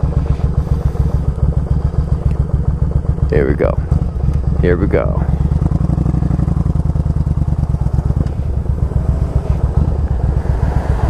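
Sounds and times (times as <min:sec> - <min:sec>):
motorcycle pulling away: 0:00.0 - 0:11.0.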